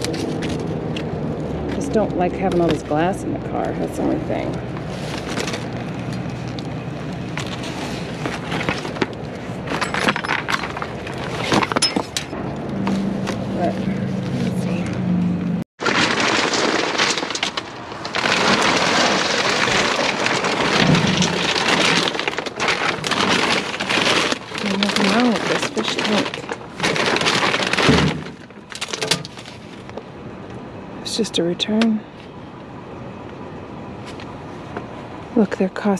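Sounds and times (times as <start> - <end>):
plastic bags and cardboard rustling: 0.0 - 15.0, 15.8 - 30.1.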